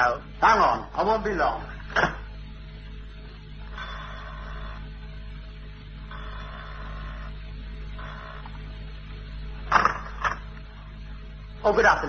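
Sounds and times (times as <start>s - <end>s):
old recording hum and hiss: 0.0s - 12.0s
electric doorbell buzzing: 3.6s - 10.9s.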